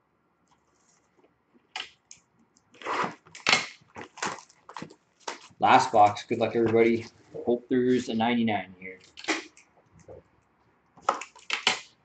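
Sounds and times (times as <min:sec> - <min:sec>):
shrink-wrap crinkling: 0:02.7 - 0:07.4.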